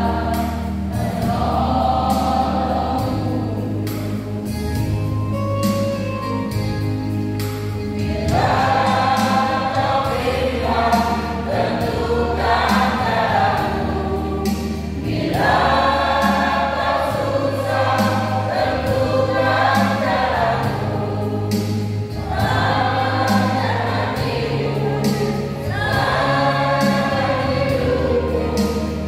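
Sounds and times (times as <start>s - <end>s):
choir singing a hymn: 0.0s - 5.9s, 7.9s - 29.0s
instrumental accompaniment: 0.0s - 29.0s.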